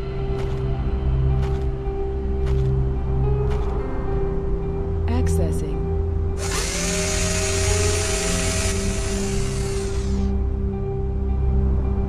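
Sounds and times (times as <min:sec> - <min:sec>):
background music with held tone: 0:00.0 - 0:12.0
whirring machine hiss and whine: 0:06.4 - 0:10.3.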